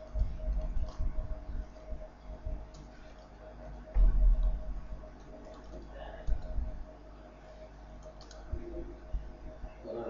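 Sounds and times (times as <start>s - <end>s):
keyboard keys clicking: 0.0s - 1.2s, 8.0s - 8.5s
faint steady hum: 0.0s - 10.0s
low thump: 3.9s - 4.6s.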